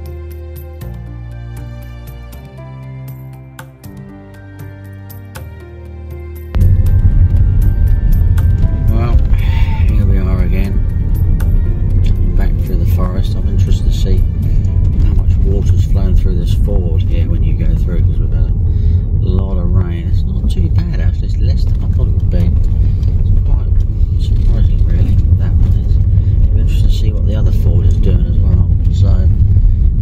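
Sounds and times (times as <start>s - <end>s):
background music with voice: 0.0s - 29.5s
car road and engine rumble: 6.5s - 30.0s.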